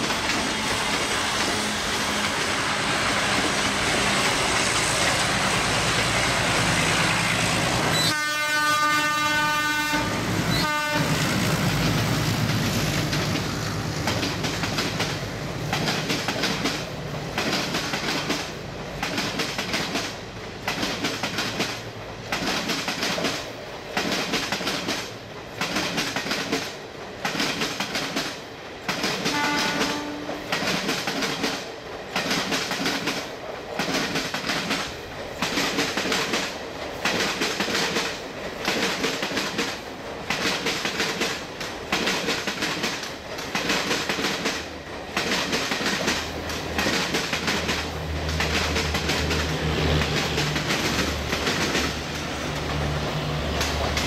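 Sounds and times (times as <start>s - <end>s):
diesel locomotive engine rumble: 0.0s - 54.0s
train horn note: 7.9s - 11.2s, 29.3s - 30.5s
train wheels clattering over rail joints: 10.5s - 54.0s.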